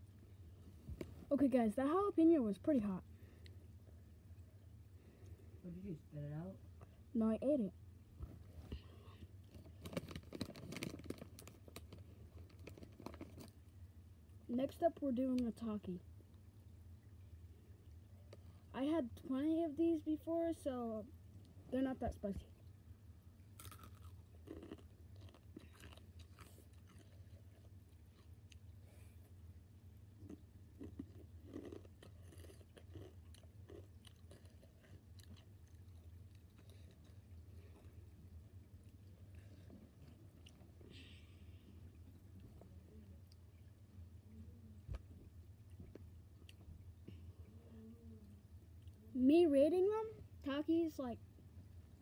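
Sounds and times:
steady low hum: 0.0 - 52.0
crunching and chewing chips: 8.4 - 13.7, 23.4 - 29.3, 30.1 - 41.0
snack bag crinkling and tearing: 9.4 - 13.6, 23.6 - 28.3, 30.8 - 37.2.

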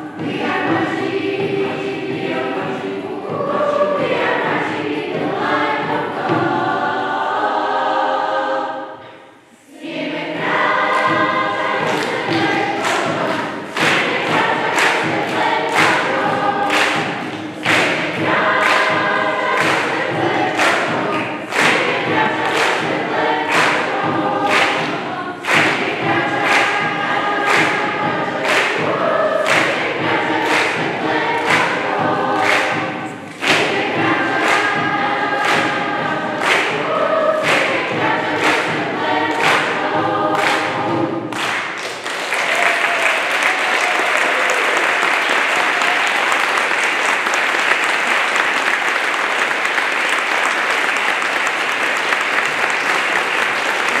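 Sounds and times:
choir singing rhythmic song: 0.0 - 54.0
audience applause: 41.4 - 54.0.

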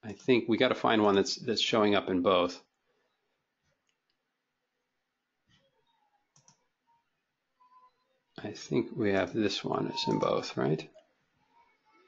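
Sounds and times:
computer mouse clicks: 6.3 - 6.7.

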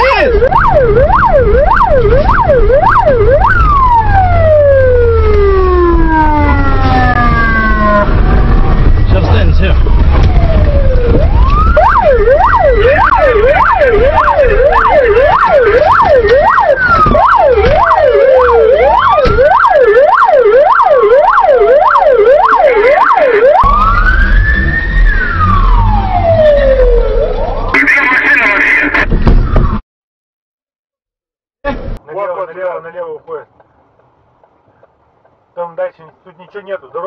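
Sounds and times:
police siren wailing and yelping: 0.0 - 8.9, 9.9 - 29.0
car engine and road rumble: 0.0 - 29.8, 31.6 - 37.0.

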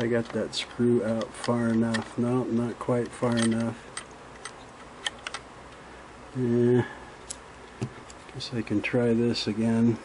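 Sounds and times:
small sharp metal clicks: 3.0 - 5.8.

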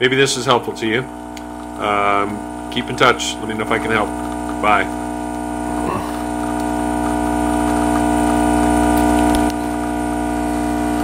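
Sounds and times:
espresso machine pump humming: 0.1 - 11.0.

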